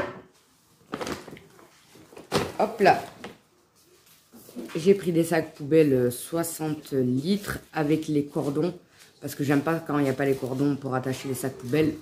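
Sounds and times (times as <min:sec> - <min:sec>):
plastic bag rustling: 0:00.4 - 0:12.0.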